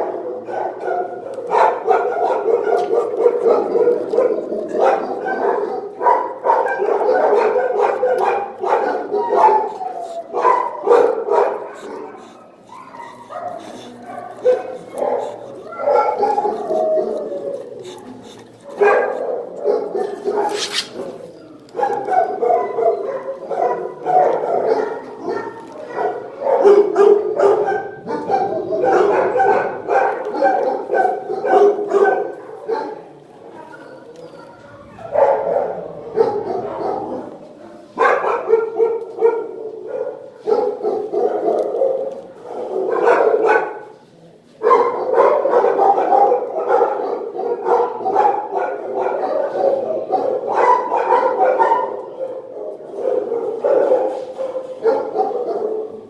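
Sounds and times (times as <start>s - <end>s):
dogs barking: 0.0s - 33.2s, 33.9s - 43.9s, 44.6s - 56.0s.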